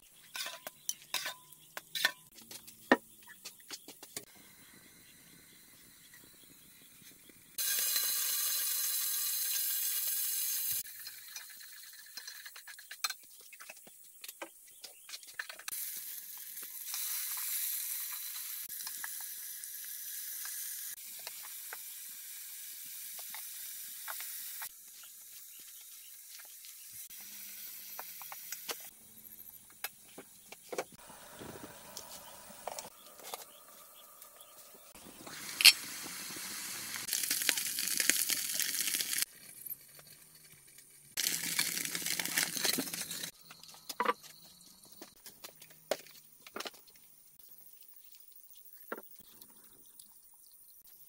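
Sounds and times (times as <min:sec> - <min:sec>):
wood fire hissing and crackling: 0:06.5 - 0:12.2, 0:15.7 - 0:28.9, 0:31.0 - 0:43.4.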